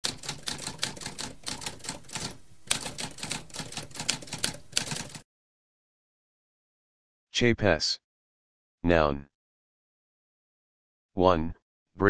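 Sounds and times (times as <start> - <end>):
typewriter typing: 0.0 - 5.2.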